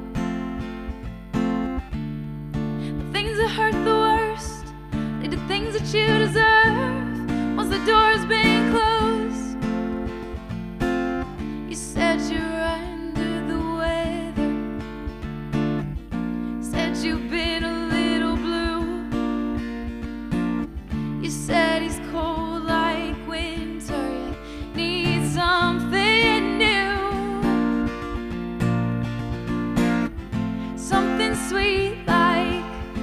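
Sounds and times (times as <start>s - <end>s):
strummed acoustic guitar: 0.0s - 33.0s
woman singing: 2.8s - 10.0s, 11.6s - 15.2s, 16.5s - 19.8s, 21.0s - 28.3s, 30.3s - 33.0s.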